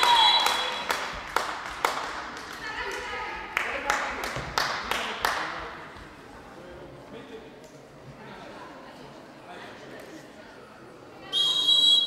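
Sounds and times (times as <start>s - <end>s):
referee whistle blast: 11.3s - 12.0s.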